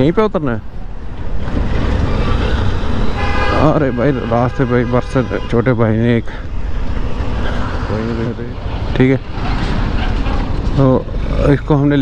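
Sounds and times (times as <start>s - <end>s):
wind and road noise: 0.0s - 12.0s
motorcycle engine rumbling: 1.0s - 12.0s
man speaking: 3.5s - 6.5s, 7.8s - 9.3s, 10.8s - 12.0s.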